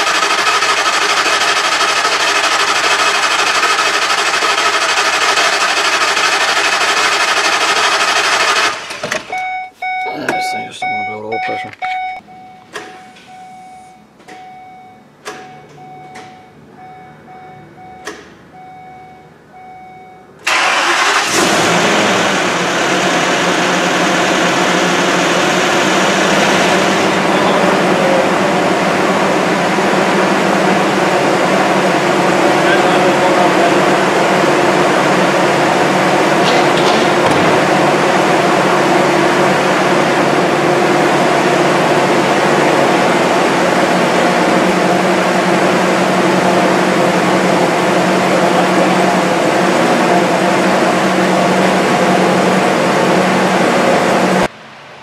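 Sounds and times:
engine starting and running: 0:00.0 - 0:10.0, 0:20.4 - 0:54.5
vehicle warning chime beeping: 0:09.3 - 0:20.4
clicks: 0:14.2 - 0:14.5, 0:15.2 - 0:16.4.

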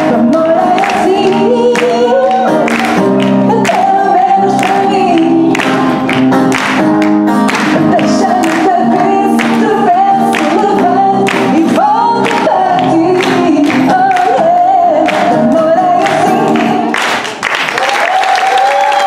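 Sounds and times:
woman singing: 0:00.0 - 0:06.2, 0:07.5 - 0:17.2
acoustic guitar: 0:00.0 - 0:17.4
audience clapping along: 0:00.0 - 0:19.0.

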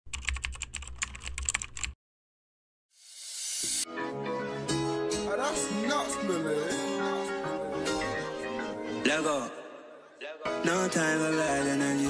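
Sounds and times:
keyboard typing clicks: 0:00.1 - 0:02.0.

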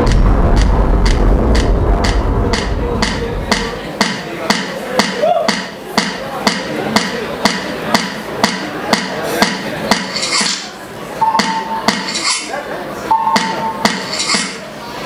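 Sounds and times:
high synth tone: 0:11.2 - 0:12.1, 0:13.1 - 0:14.2.

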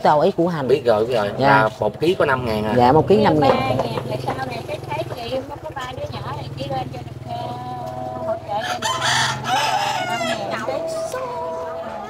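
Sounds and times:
rooster crowing: 0:08.5 - 0:12.0.

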